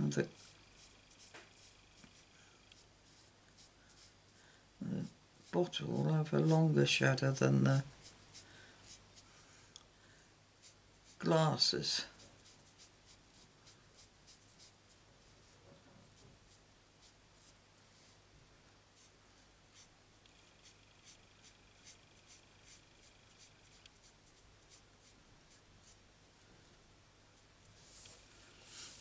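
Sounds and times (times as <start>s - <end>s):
marker scratching on cardstock: 0.4s - 2.2s.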